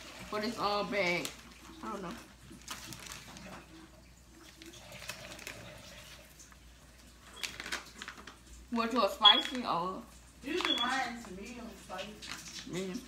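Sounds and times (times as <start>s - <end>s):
plastic bag crinkling: 0.0s - 9.6s, 10.4s - 13.0s.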